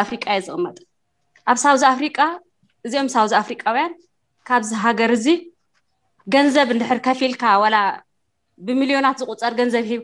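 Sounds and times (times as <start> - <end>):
woman speaking: 0.0 - 5.6, 6.2 - 10.0.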